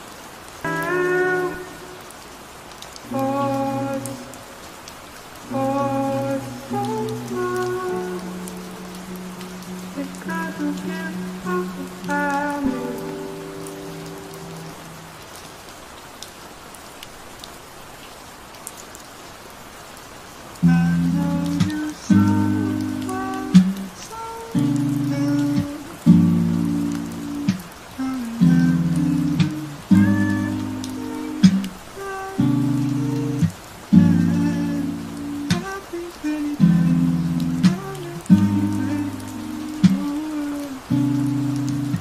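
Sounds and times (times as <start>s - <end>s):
rain falling: 0.0s - 42.0s
soft lo-fi chords: 0.7s - 2.2s, 3.0s - 4.5s, 5.4s - 15.2s, 20.6s - 42.0s.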